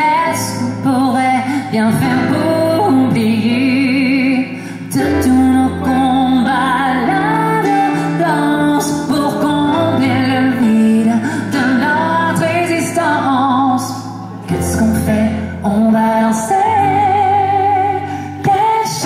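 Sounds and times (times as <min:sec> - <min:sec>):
guitars: 0:00.0 - 0:19.0
man singing into microphone: 0:00.0 - 0:19.0.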